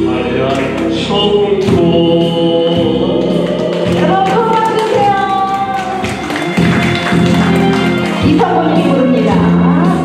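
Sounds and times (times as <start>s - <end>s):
man singing into a microphone: 0.0s - 4.0s
instrumental accompaniment: 0.0s - 10.0s.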